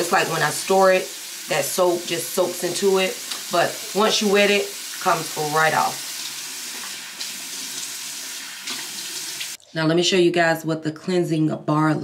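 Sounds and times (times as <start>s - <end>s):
tap water running into sink: 0.0s - 9.6s.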